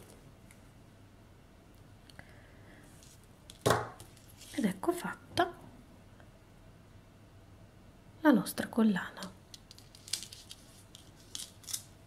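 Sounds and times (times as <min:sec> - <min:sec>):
necklace rustling: 0:03.0 - 0:04.7, 0:09.6 - 0:12.0.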